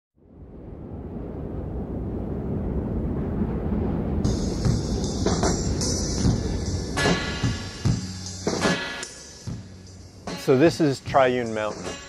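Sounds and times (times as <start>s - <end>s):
low steady rumbling: 0.2s - 8.6s.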